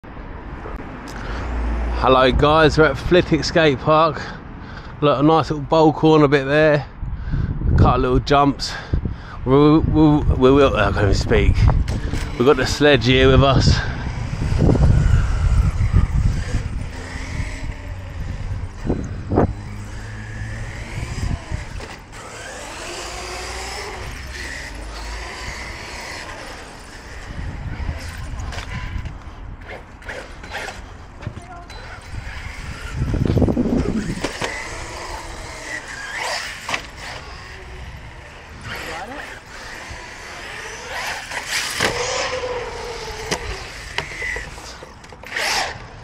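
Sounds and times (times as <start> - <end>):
wind buffeting microphone: 6.9 - 30.2, 30.8 - 46.0
tyres rumbling on concrete: 11.1 - 46.0
electric motor whining: 11.2 - 30.8, 31.7 - 46.0.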